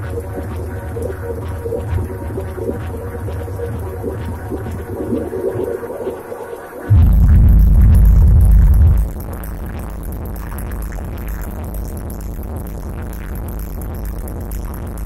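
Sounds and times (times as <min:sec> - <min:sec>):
heavy bass: 0:06.9 - 0:13.1.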